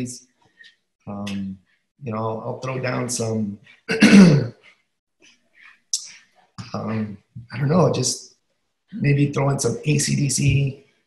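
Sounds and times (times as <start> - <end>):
man clearing his throat: 3.9 - 4.5.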